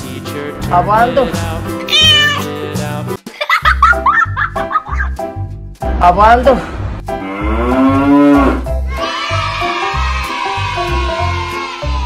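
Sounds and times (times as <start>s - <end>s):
music with steady beat: 0.0s - 6.1s
cow mooing: 7.2s - 8.7s.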